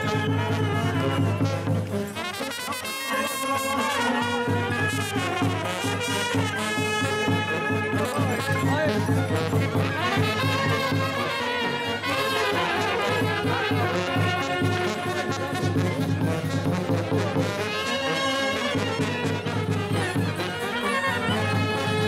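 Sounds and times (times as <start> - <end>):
brass band playing folk tune: 0.0 - 22.0
trumpets playing melody: 0.0 - 22.0.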